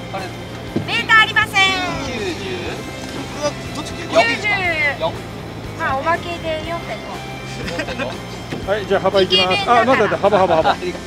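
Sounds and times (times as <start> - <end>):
boat engine drone: 0.0 - 11.0
indistinct voices: 0.0 - 11.0.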